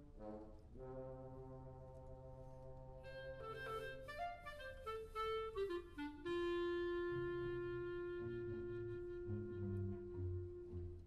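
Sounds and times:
brass sustained chord: 0:00.0 - 0:11.0.

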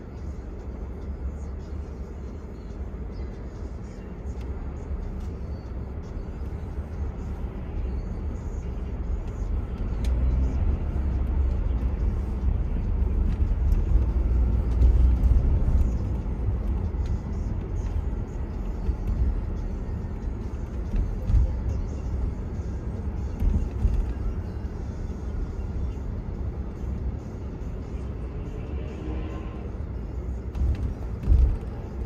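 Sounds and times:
car driving rumble from inside: 0:00.0 - 0:32.0.

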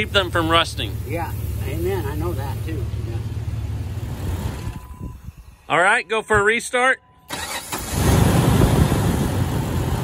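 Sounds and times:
car engine idling: 0:00.0 - 0:05.7.

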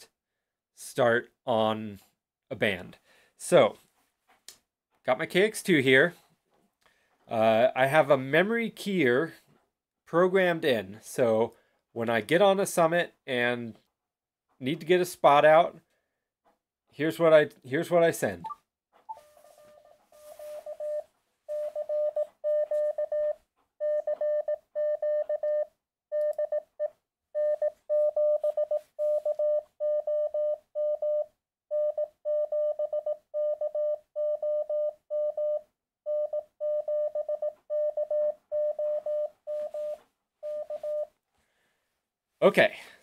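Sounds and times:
morse code tone: 0:18.4 - 0:26.8, 0:27.4 - 0:41.1.

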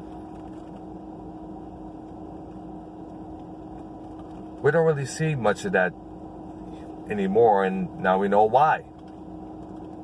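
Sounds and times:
faint constant tone: 0:00.0 - 0:10.0
parked car engine humming: 0:00.0 - 0:10.0.

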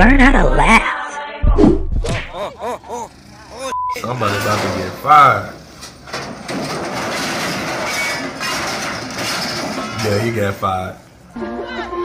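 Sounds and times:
grinding metal rumble: 0:04.1 - 0:10.7.

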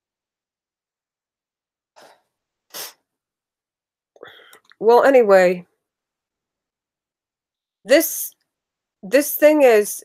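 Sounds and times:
person breathing: 0:04.2 - 0:04.7.

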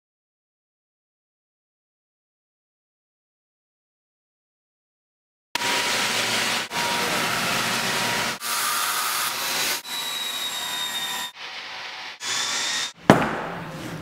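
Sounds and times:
circular saw cutting wood: 0:05.6 - 0:13.0
sharp hammer knock: 0:13.1 - 0:13.6.

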